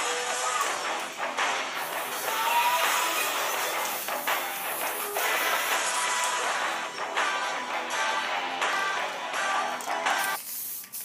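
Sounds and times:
guitar music: 0.0 - 10.4
aerosol can spraying hiss: 1.8 - 5.9, 10.0 - 11.0.

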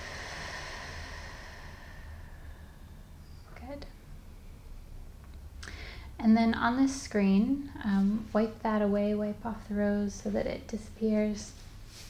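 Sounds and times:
long soft exhale: 0.0 - 3.6, 5.6 - 6.1
faint low hum: 0.0 - 12.0.

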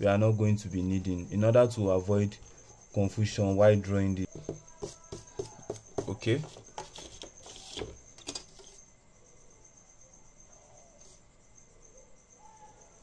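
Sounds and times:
scratchy rustles on paper: 4.3 - 8.8.

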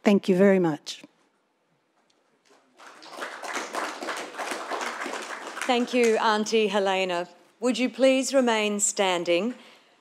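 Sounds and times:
people applauding: 2.4 - 6.5.

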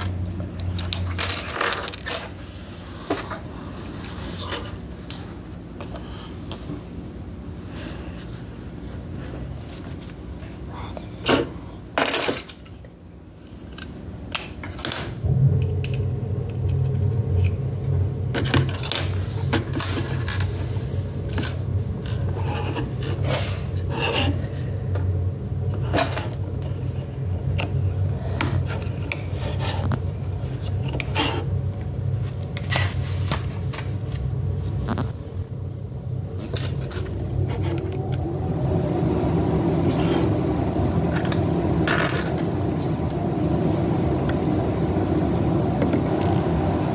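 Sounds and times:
steady low hum: 0.0 - 46.9.

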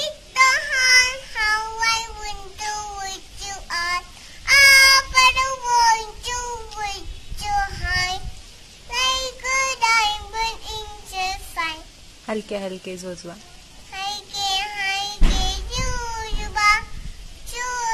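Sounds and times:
toddler singing: 0.0 - 12.0, 13.8 - 17.9.

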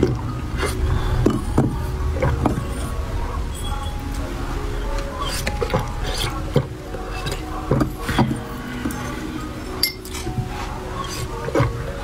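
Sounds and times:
tubes clicking and clinking: 4.9 - 12.0.

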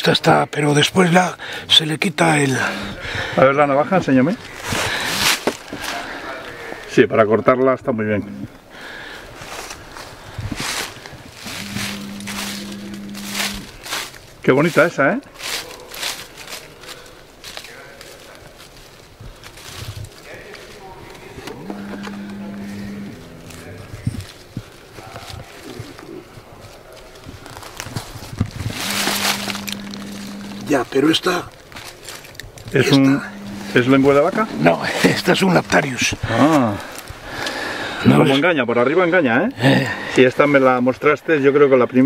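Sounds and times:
steady low hum: 2.2 - 3.4, 11.0 - 14.2, 21.2 - 24.7, 28.4 - 37.4
footsteps crunching dry leaves: 9.4 - 37.2.

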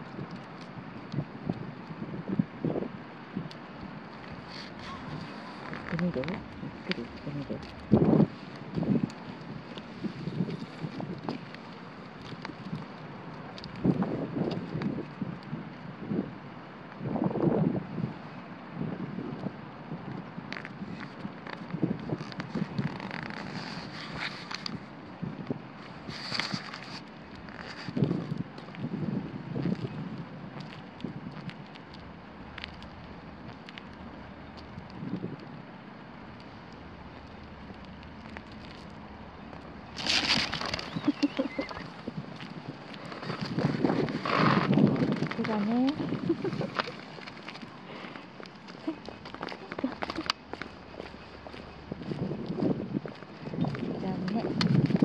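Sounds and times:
steady outdoor hiss: 0.0 - 55.0
wind buffeting microphone: 0.0 - 55.0
brief rustles: 37.8 - 51.7.

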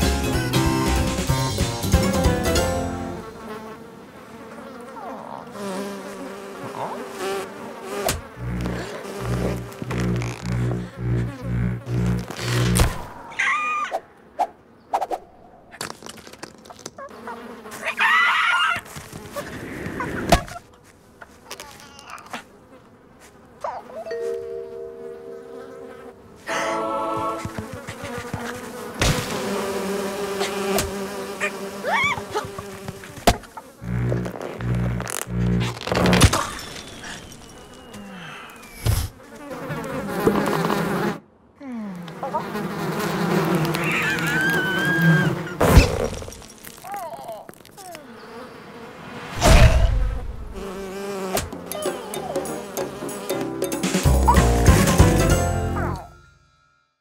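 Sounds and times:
cartoon bee buzzing: 0.3 - 13.2, 16.6 - 19.5, 20.2 - 56.1
short rising squeaks: 43.8 - 46.1
sudden thump: 49.4 - 50.6.

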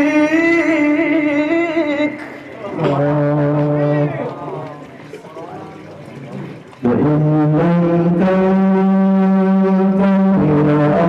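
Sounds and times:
man chanting into a microphone: 0.0 - 4.8, 6.8 - 11.0.

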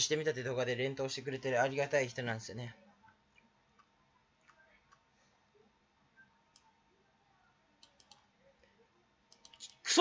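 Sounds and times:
man speaking: 0.0 - 2.8, 9.6 - 10.0
faint clicks: 7.8 - 8.3, 9.3 - 9.8.

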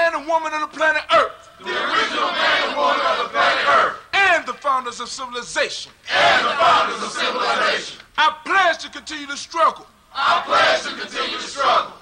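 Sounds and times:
group shouting a chant: 1.6 - 4.0, 6.1 - 8.0, 10.2 - 12.0.

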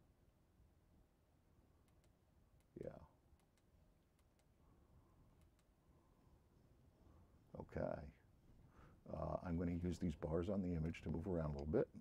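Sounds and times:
computer mouse clicks: 1.8 - 2.8, 3.4 - 4.5, 5.4 - 5.7.

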